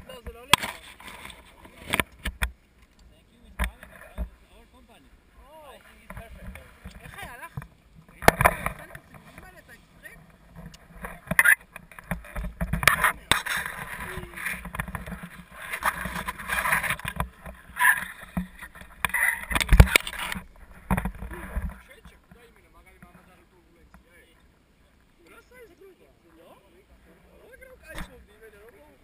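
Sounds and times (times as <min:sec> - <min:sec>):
harness rustling and knocking: 0:05.9 - 0:23.2.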